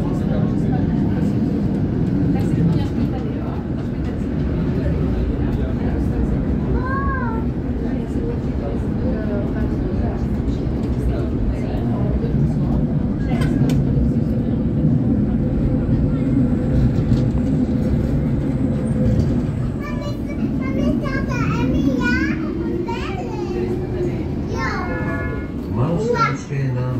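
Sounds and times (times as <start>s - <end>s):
children talking and calling: 0.0s - 26.9s
tram rumbling on rails: 0.0s - 26.9s.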